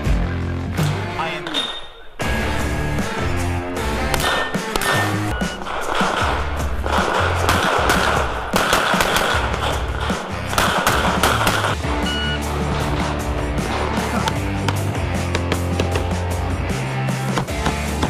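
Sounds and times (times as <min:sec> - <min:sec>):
music with steady beat: 0:02.2 - 0:18.0
rapid pistol shots: 0:04.1 - 0:11.9.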